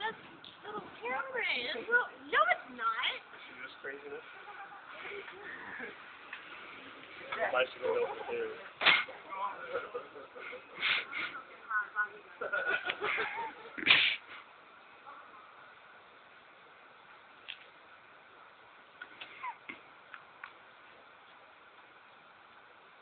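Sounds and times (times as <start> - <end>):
people talking and laughing: 0.0 - 14.5
background hiss: 0.0 - 23.0.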